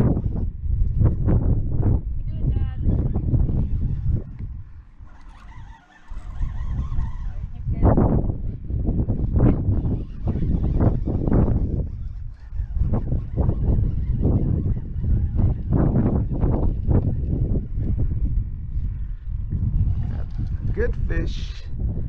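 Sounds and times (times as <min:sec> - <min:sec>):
wind rumbling on microphone: 0:00.0 - 0:22.0.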